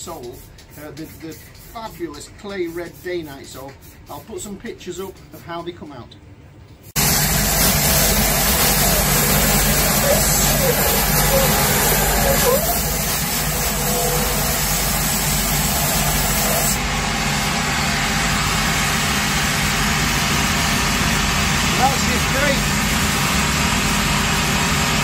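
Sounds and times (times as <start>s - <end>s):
grinding machine hissing: 7.0s - 25.0s.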